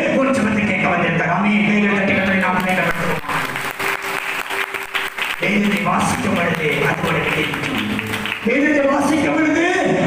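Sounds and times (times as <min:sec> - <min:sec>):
man speaking over loudspeakers: 0:00.0 - 0:03.8, 0:05.3 - 0:10.0
crowd clapping: 0:02.1 - 0:09.0.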